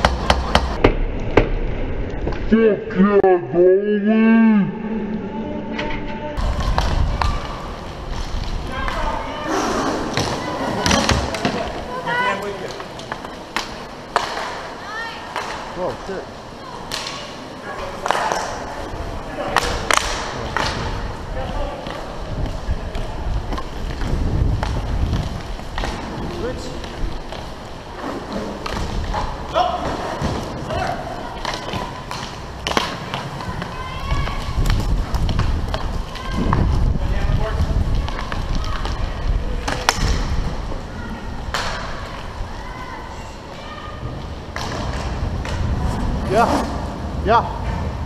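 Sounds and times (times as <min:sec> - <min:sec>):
hockey sticks and puck clacking: 0:00.0 - 0:01.5, 0:10.1 - 0:16.2, 0:16.8 - 0:18.6, 0:19.5 - 0:22.1, 0:22.9 - 0:36.6, 0:41.5 - 0:42.3
inline skates rumbling: 0:00.0 - 0:02.6, 0:05.4 - 0:48.0
wind on microphone: 0:22.1 - 0:26.4, 0:34.0 - 0:41.5.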